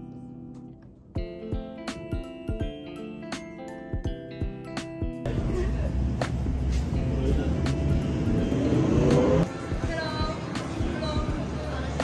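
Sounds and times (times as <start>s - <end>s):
vehicle engine rising in pitch: 5.3s - 9.5s
street traffic rumble: 5.3s - 12.0s.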